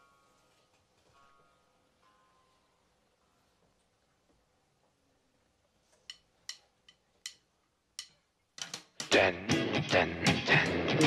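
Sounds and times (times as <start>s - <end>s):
drumstick count-in clicks: 6.1s - 9.6s.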